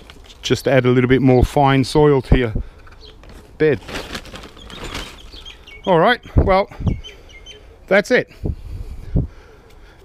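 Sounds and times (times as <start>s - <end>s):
hand rustling gritty soil mix: 0.0s - 2.0s.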